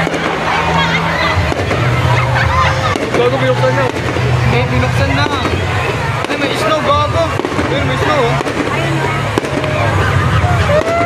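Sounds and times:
crowd voices: 0.0 - 11.0
fireworks exploding: 0.0 - 11.0.

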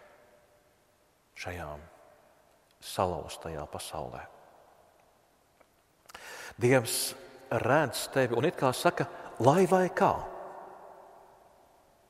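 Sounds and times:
man speaking: 1.4 - 1.9, 2.8 - 4.3, 6.6 - 10.5.

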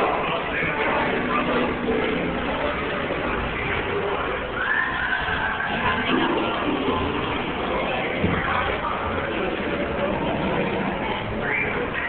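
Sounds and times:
recorded effects and background noise: 0.0 - 12.0.

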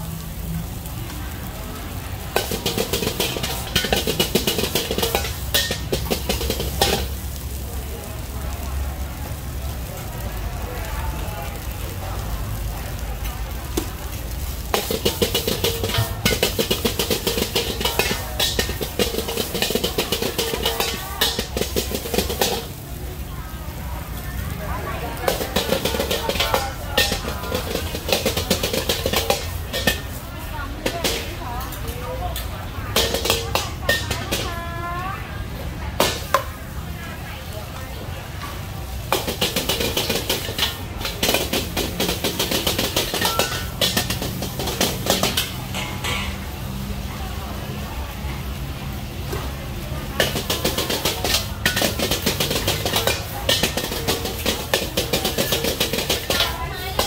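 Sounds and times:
metal ladle scraping wok: 0.6 - 7.6, 14.0 - 36.7, 38.3 - 47.1, 50.1 - 57.0.

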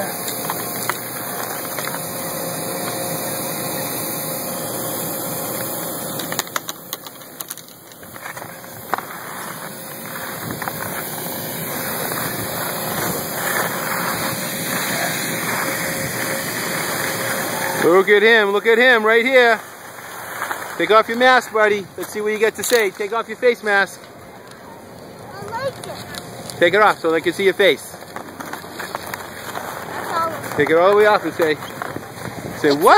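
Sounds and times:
electric blower fan humming: 0.0 - 22.5.

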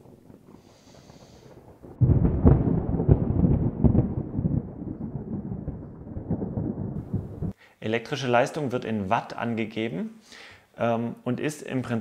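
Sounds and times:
loud low rumbling: 0.0 - 7.6.

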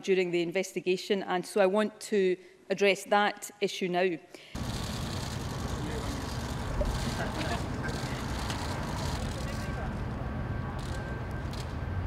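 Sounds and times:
wind: 4.5 - 12.0
traffic rumble: 4.6 - 12.0.

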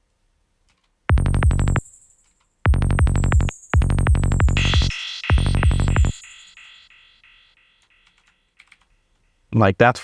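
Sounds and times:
synth hits dropping in pitch: 1.1 - 1.9, 2.7 - 7.6.

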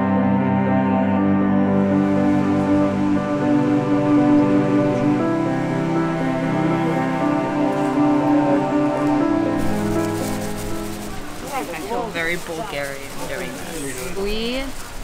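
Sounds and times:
slow music of long held notes: 0.0 - 13.8.

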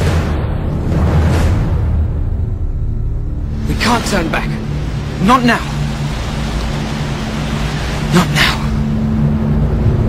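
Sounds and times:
steady rushing noise: 0.0 - 10.0
low sustained music notes: 1.9 - 10.0.

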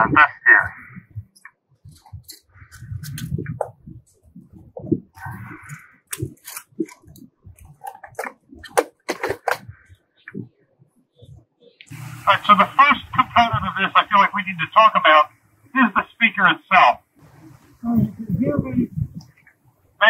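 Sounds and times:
metal canister clicks and scrapes: 6.1 - 7.1.

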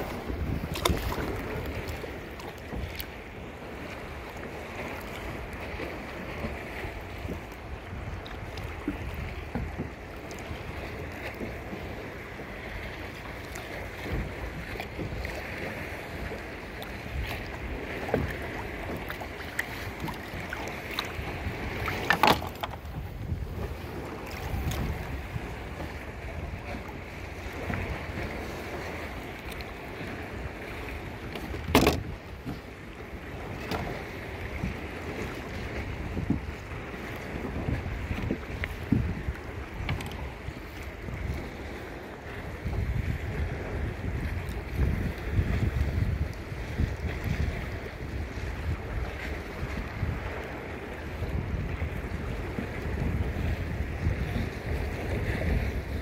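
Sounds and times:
water sloshing against kayak: 0.0 - 56.0
wind rumble on microphone: 0.0 - 56.0.

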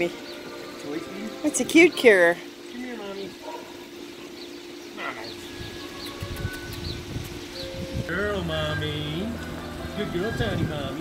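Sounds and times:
small bird chirping: 0.0 - 10.4
steady hum: 0.0 - 11.0
low rumbling: 5.3 - 11.0.

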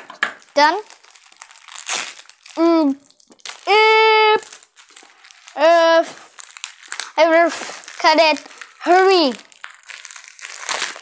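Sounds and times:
plastic packaging crinkling: 0.0 - 11.0
child humming: 3.7 - 4.5.

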